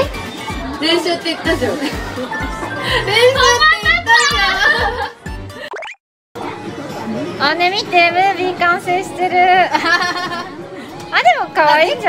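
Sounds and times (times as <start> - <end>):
background music with steady beat: 0.0 - 5.7.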